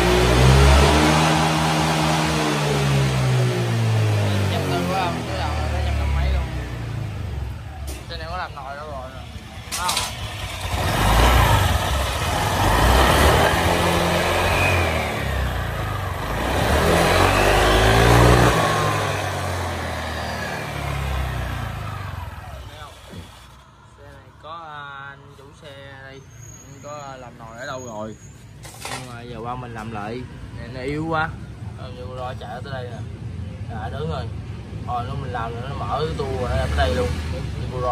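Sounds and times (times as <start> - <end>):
scooter engine revving: 0.0 - 23.8, 35.4 - 37.9
man talking: 4.2 - 6.7, 8.0 - 10.1, 24.0 - 26.2, 29.1 - 37.9.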